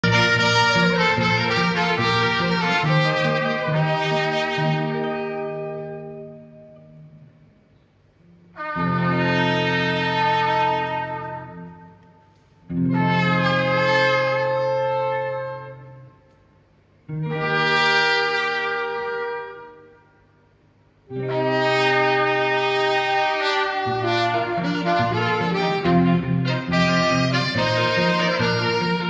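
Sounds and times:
wind instrument: 0:00.0 - 0:07.4, 0:08.3 - 0:16.4, 0:17.1 - 0:20.5, 0:21.1 - 0:29.0
electric guitar: 0:00.0 - 0:07.6, 0:08.2 - 0:16.4, 0:17.0 - 0:20.0, 0:21.1 - 0:29.0
saxophone: 0:00.0 - 0:07.6, 0:08.2 - 0:16.5, 0:17.1 - 0:20.5, 0:21.1 - 0:29.0.

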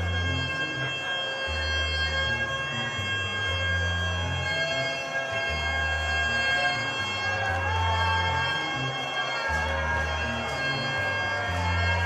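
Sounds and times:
bass line: 0:00.0 - 0:12.0
saxophone: 0:00.0 - 0:12.0.

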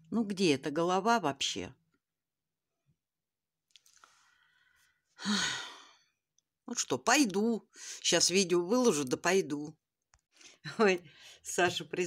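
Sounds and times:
woman sighing: 0:05.2 - 0:06.0.

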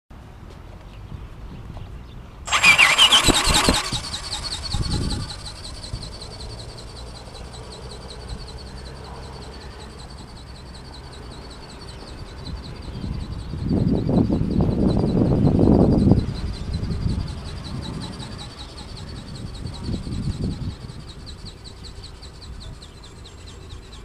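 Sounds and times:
model plane motor whine: 0:02.5 - 0:08.5.

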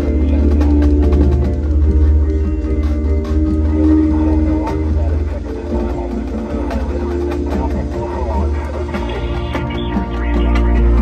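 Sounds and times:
marching band sustained chords: 0:00.0 - 0:11.0
sharp percussion strikes: 0:00.0 - 0:11.0.

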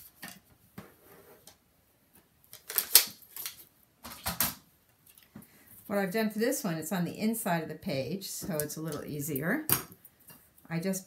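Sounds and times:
rustling scrapes: 0:00.8 - 0:01.5.

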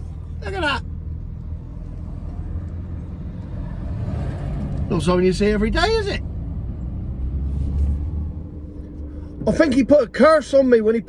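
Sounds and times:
vehicle engine low rumble: 0:00.0 - 0:11.0.

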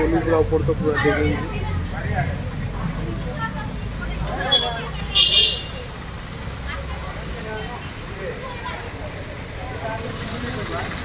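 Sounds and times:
people's voices: 0:00.0 - 0:11.0
traffic engines rumbling: 0:00.0 - 0:11.0.

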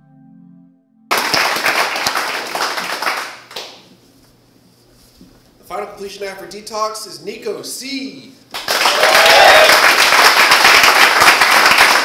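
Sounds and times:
soft intro music: 0:00.0 - 0:01.2
audience applause: 0:01.1 - 0:03.8, 0:08.6 - 0:12.0.

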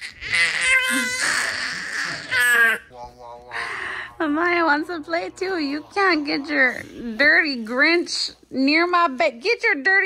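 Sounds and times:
baby squealing and laughing: 0:00.0 - 0:02.9.

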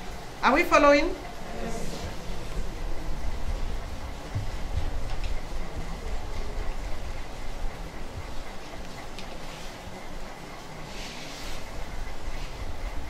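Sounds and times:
low steady rumbling: 0:00.0 - 0:09.2.

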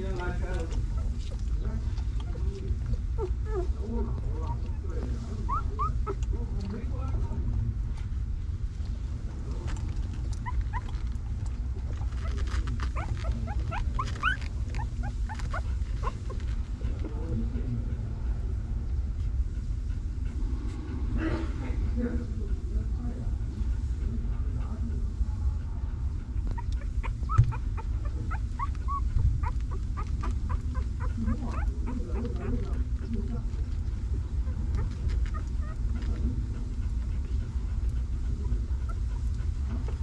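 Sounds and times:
steady low rumble: 0:00.0 - 0:40.0
puppies squeaking: 0:00.2 - 0:06.4, 0:10.3 - 0:16.6, 0:26.4 - 0:33.2, 0:34.3 - 0:36.2.

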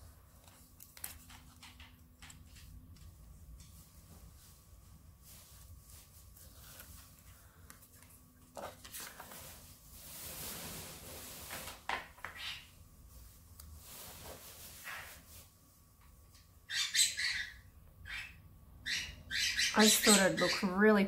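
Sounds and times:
paper and tape rustling: 0:05.2 - 0:12.4
bird squawking: 0:16.7 - 0:20.7.

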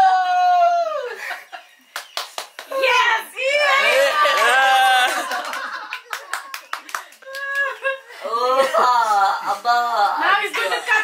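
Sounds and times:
hands clapping: 0:01.9 - 0:02.9, 0:04.2 - 0:07.9.

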